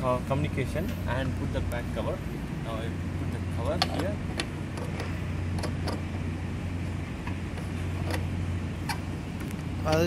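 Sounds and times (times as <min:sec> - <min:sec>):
low machinery drone: 0:00.0 - 0:10.0.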